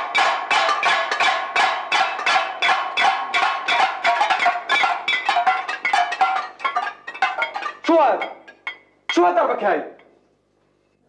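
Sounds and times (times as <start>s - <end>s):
plates beating on iron bars: 0.0s - 9.4s.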